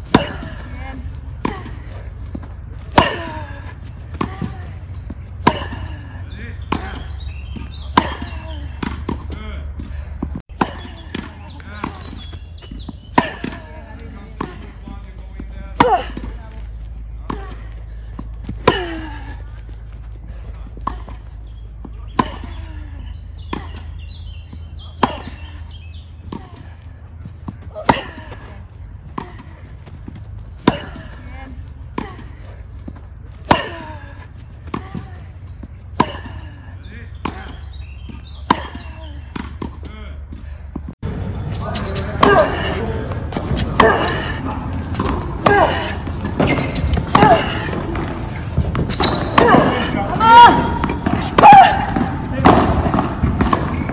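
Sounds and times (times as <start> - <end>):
tennis balls bouncing on court: 0.0 - 53.9
tennis balls struck by racquets: 0.0 - 53.9.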